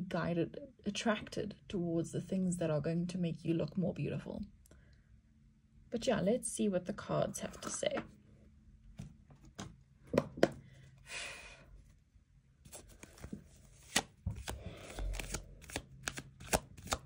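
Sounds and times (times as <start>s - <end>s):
cards being shuffled: 12.6s - 17.0s.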